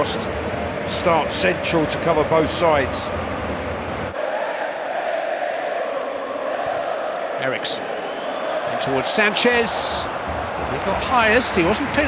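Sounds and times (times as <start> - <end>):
crowd chanting and cheering: 0.0 - 12.0.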